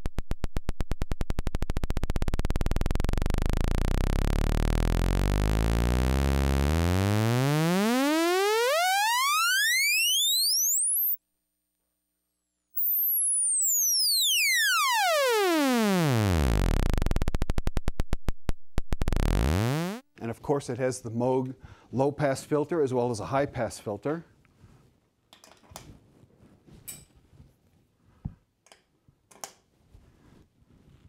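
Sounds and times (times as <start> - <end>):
buzzy synthesizer tone sweeping: 0.0 - 11.2, 12.8 - 20.0.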